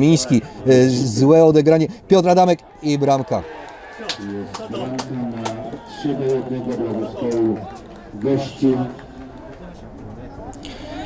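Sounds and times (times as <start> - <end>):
men talking and calling out: 0.0 - 11.0.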